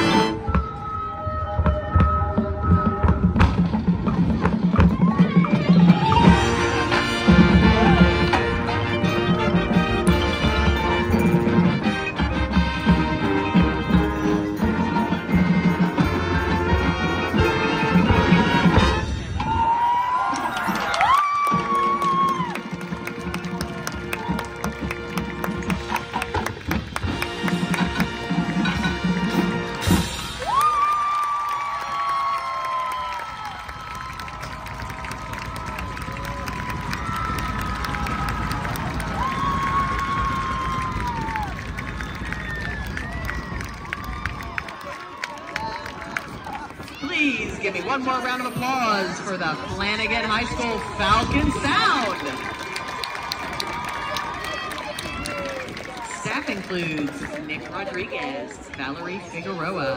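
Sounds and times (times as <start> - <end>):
marching band brass and drums: 0.0 - 59.9
crowd cheering and applauding: 4.2 - 59.7.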